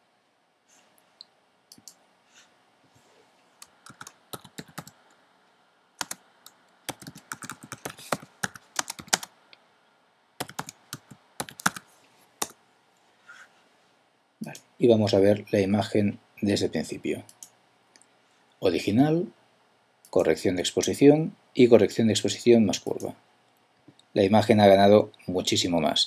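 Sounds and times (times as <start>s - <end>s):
computer keyboard typing: 3.6s - 5.0s, 6.0s - 9.3s, 10.4s - 12.6s.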